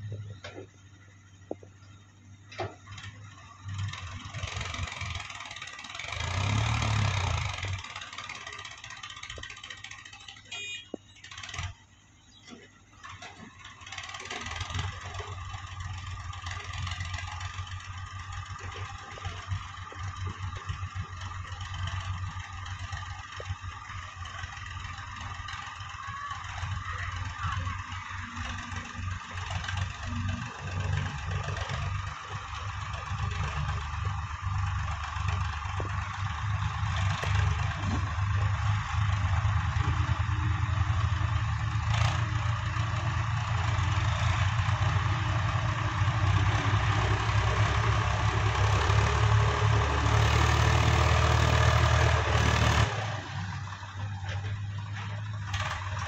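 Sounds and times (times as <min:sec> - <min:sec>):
diesel tractor engine running: 0:00.0 - 0:56.0.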